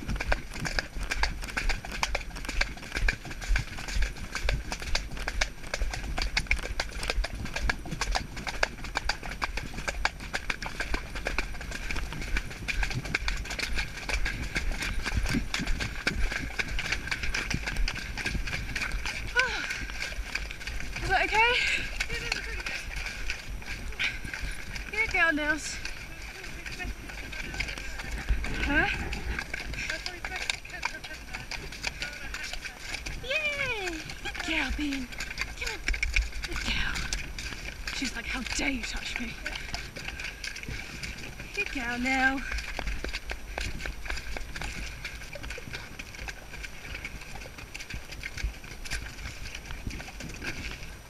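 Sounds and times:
hooves on muddy track: 0:00.0 - 0:51.0
wind rumble on microphone: 0:00.0 - 0:51.0.

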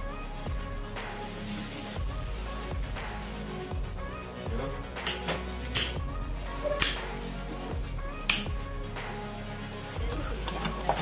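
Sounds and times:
soft background music: 0:00.0 - 0:11.0
vegetables sizzling: 0:10.0 - 0:11.0
wooden spoon stirring in pot: 0:10.0 - 0:11.0.

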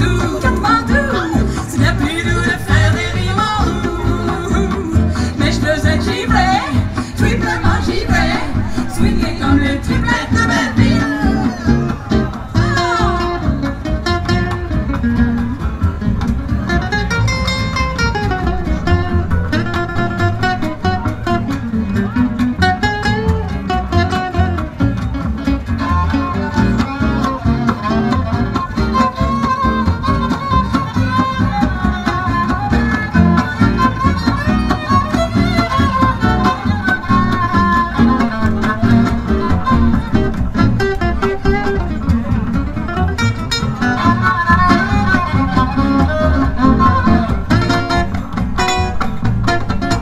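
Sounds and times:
acoustic guitars strumming: 0:00.0 - 0:50.0
upright double bass: 0:00.0 - 0:50.0
violin: 0:00.0 - 0:50.0.

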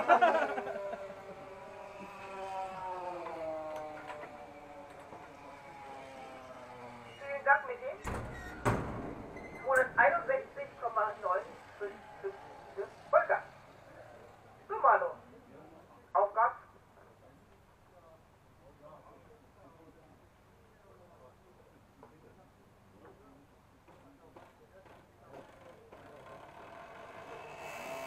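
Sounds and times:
model car engine whine: 0:00.0 - 0:08.0, 0:09.9 - 0:15.7, 0:25.3 - 0:28.0.

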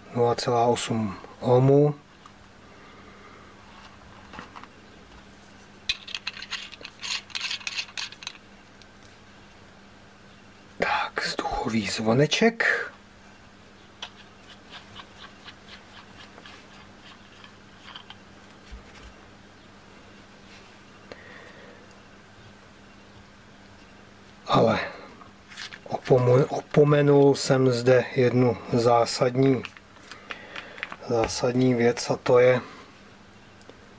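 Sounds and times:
light metallic clicks and scrapes: 0:05.9 - 0:08.4.

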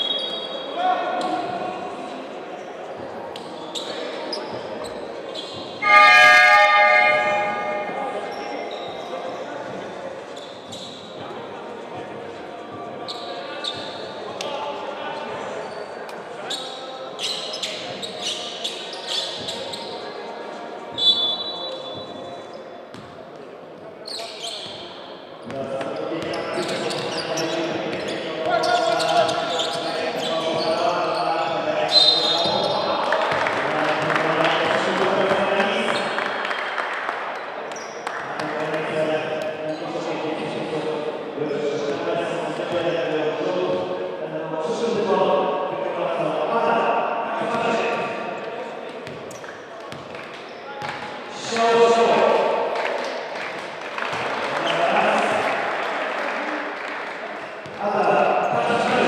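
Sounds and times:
crowd noise and voices: 0:00.0 - 0:59.0
game horn blast: 0:05.8 - 0:08.1
referee's whistle blasts: 0:05.8 - 0:08.2, 0:21.0 - 0:22.3.

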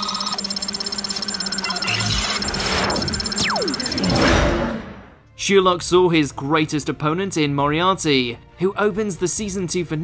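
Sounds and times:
pulsing digital flutter: 0:00.0 - 0:04.8
high tone: 0:00.6 - 0:05.0.

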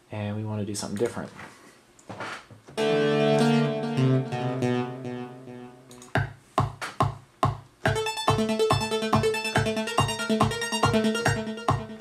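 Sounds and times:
synthesizer held chord: 0:02.8 - 0:06.0, 0:07.9 - 0:12.0.

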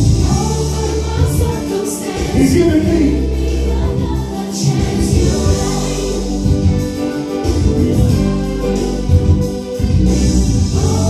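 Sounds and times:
strong bass line: 0:00.0 - 0:01.5, 0:02.2 - 0:11.0
gospel choir singing: 0:00.0 - 0:11.0.

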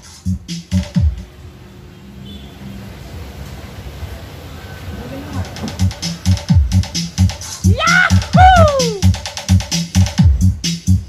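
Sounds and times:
electronic music over pa: 0:05.8 - 0:11.0.

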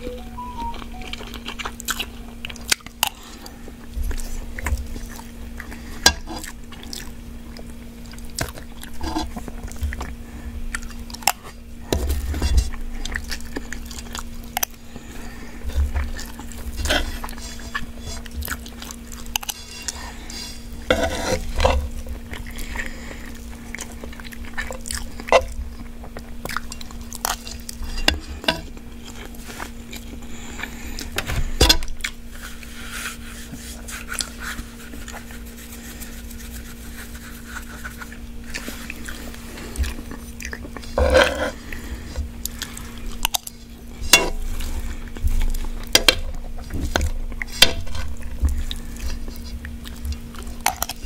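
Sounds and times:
faint steady hum: 0:00.0 - 0:51.0
chewing noodles: 0:01.1 - 0:31.2, 0:31.9 - 0:51.0
metal spoon scraping a pan: 0:19.4 - 0:21.8.

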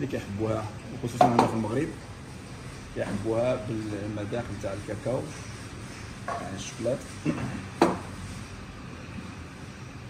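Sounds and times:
cafe room noise: 0:00.0 - 0:10.0.

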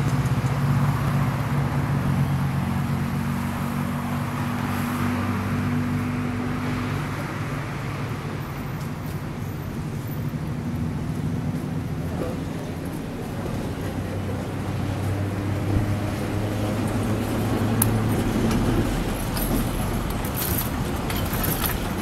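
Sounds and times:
road traffic hum: 0:00.0 - 0:22.0
vehicle drone: 0:00.0 - 0:22.0
tram wheels squeaking on rails: 0:15.6 - 0:22.0.

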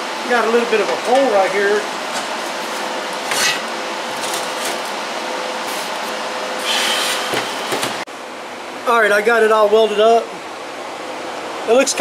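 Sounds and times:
faint constant hum: 0:00.0 - 0:12.0
welding arc hissing: 0:06.6 - 0:08.0.

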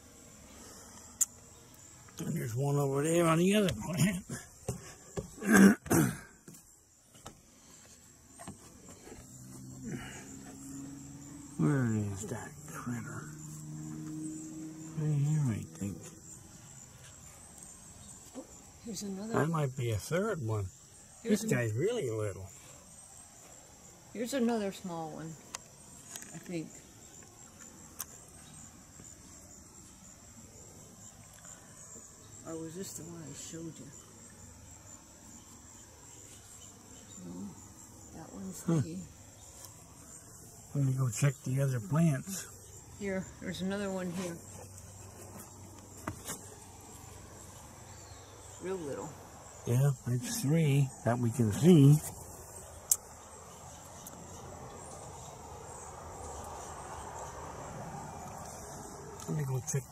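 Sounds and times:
crickets chirring: 0:00.0 - 0:59.9
insects trilling: 0:00.0 - 0:59.9.

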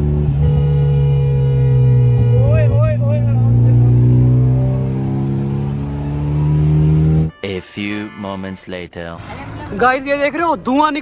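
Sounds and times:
car engine droning at speed: 0:00.0 - 0:07.3.

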